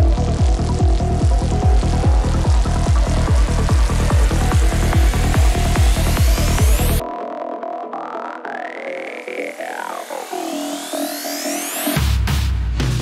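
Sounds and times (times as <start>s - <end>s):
kick drum: 0.0s - 7.0s
rolling bass: 0.0s - 7.0s
rising synth sweep: 0.0s - 12.0s
synthesizer lines: 0.0s - 12.2s
psytrance music: 0.0s - 13.0s.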